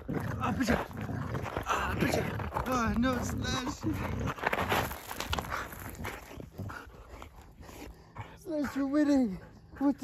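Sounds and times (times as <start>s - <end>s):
scuffles and rustles on dirt: 0.2s - 8.0s.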